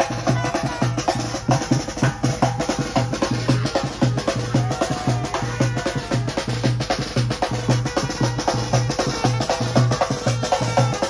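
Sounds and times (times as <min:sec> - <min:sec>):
drums beating fast rhythm: 0:00.0 - 0:11.0
trumpet notes: 0:00.0 - 0:11.0.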